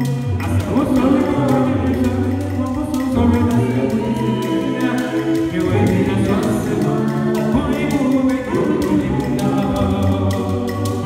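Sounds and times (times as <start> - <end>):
gourd shaker beat: 0.0 - 11.0
group singing in close harmony: 0.0 - 11.0.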